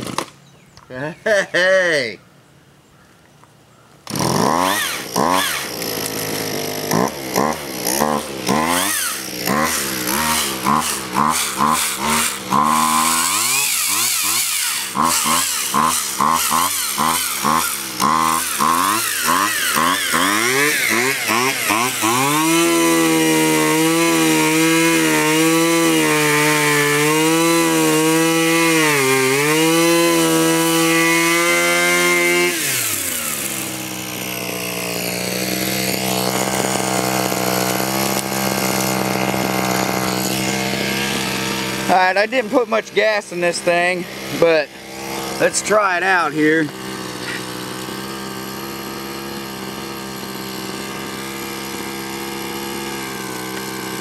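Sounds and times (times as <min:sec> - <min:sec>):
string trimmer engine revving: 0:00.0 - 0:00.4, 0:04.0 - 0:54.0.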